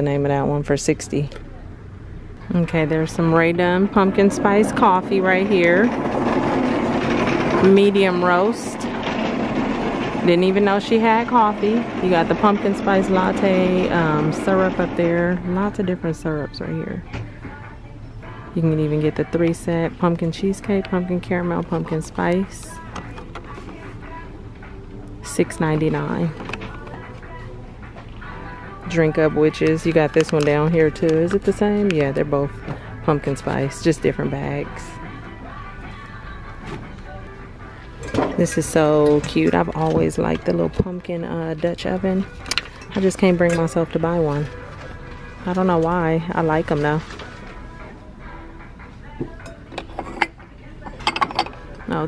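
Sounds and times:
low room hum: 0.0s - 49.6s
ceramic dishes clinking: 49.4s - 51.6s.

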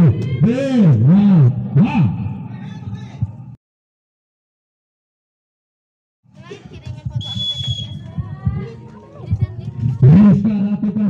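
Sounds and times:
chatter of voices: 0.0s - 3.2s, 6.3s - 11.0s
referee's whistle: 7.2s - 8.0s.

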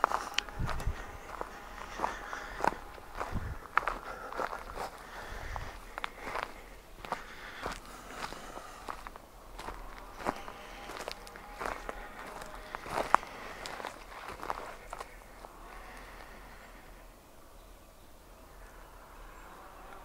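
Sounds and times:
footsteps on forest trail: 0.0s - 17.0s.

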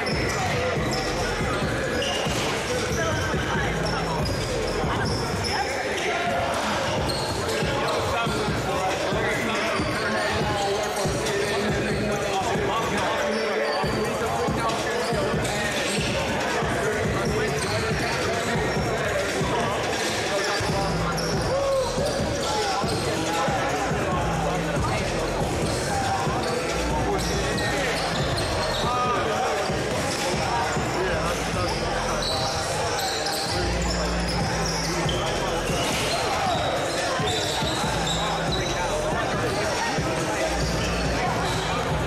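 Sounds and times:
spectators chattering: 0.0s - 42.0s.

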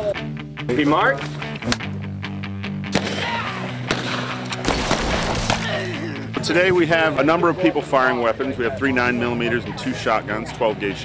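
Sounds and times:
background music: 0.0s - 11.0s
sharp gunshots: 2.9s - 5.8s.

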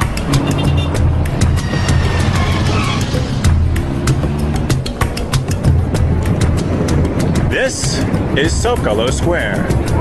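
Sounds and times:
background music: 0.0s - 10.0s
cars passing: 0.0s - 10.0s.

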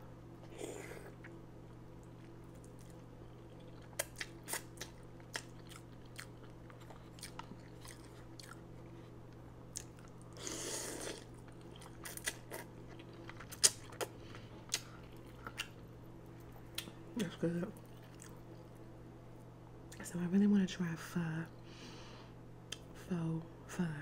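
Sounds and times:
faint steady hum: 0.0s - 24.0s
close chewing with wet mouth clicks: 2.6s - 8.6s.

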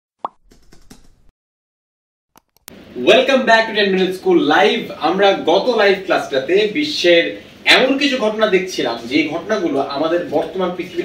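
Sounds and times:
pop sound effect: 0.2s - 0.6s.

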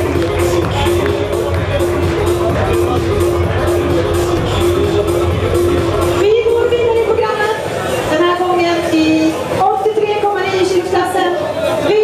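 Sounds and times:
woman announcing over loudspeaker: 6.1s - 12.0s.

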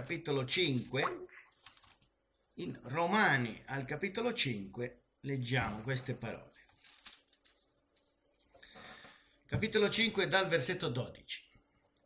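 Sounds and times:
short intake of breath: 8.6s - 9.3s.

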